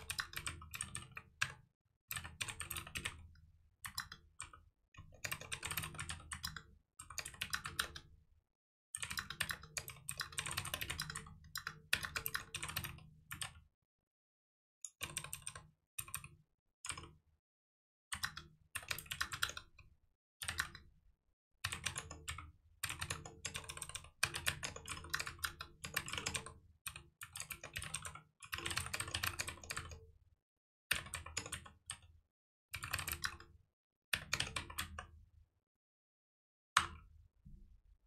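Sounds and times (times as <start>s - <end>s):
computer keyboard typing: 0.0s - 3.1s, 5.2s - 6.6s, 9.0s - 13.5s, 15.1s - 16.2s, 18.2s - 19.6s, 21.7s - 26.6s, 27.3s - 30.0s, 32.9s - 33.4s.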